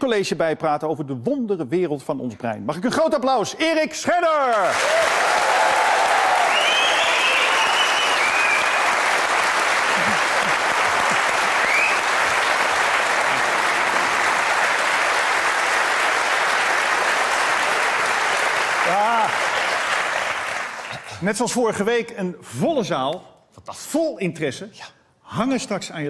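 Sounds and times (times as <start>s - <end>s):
audience applauding: 4.5s - 21.2s.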